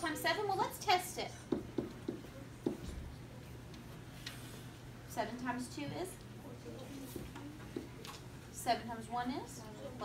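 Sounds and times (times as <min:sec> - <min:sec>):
pen tapping on whiteboard: 0:01.5 - 0:02.9.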